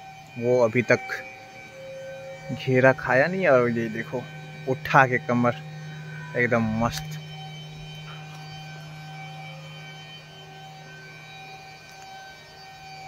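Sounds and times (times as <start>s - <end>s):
faint high-pitched tones: 0.0s - 13.0s
low electrical hum: 1.3s - 13.0s.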